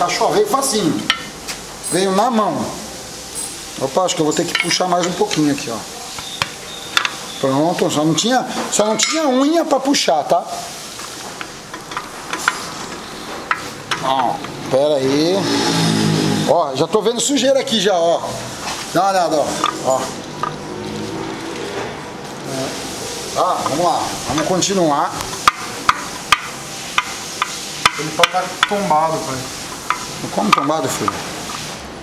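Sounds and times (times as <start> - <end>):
steady hiss: 0.0 - 21.2, 22.1 - 32.0.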